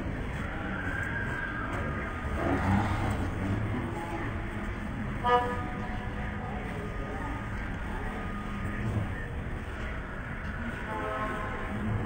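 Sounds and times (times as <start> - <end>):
low voices: 0.0 - 12.0
street traffic: 0.0 - 12.0
car horn toot: 5.2 - 5.8.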